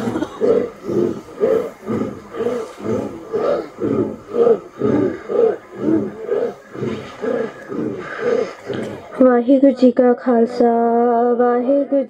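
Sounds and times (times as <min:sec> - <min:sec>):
crowd chanting in unison: 0:00.0 - 0:09.4.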